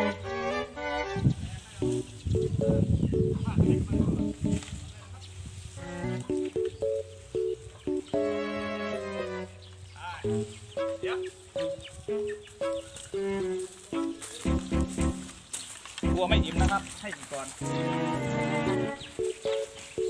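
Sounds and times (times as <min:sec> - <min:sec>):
melody of short notes: 0:01.8 - 0:04.7, 0:05.8 - 0:09.6, 0:10.2 - 0:15.4, 0:16.0 - 0:17.0, 0:17.6 - 0:20.0.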